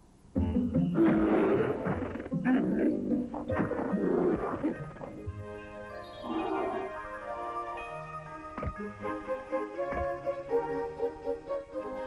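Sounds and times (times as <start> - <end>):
music soundtrack: 0.3 - 12.0
bears grunting and growling: 1.0 - 5.3, 6.2 - 7.2.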